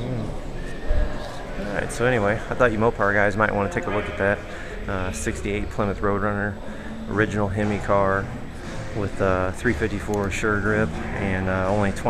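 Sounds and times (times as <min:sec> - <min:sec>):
man speaking: 0:00.0 - 0:12.0
people talking in background: 0:00.0 - 0:12.0.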